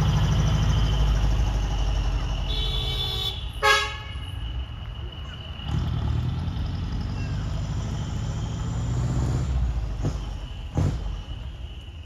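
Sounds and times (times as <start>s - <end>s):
diesel truck engine rumble: 0.0s - 12.0s.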